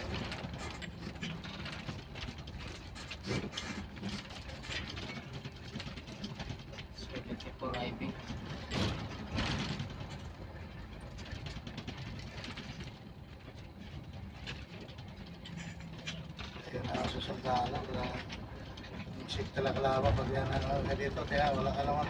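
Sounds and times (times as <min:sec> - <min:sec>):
vehicle engine and road rumble: 0:00.0 - 0:22.0
indistinct voices: 0:19.1 - 0:22.0.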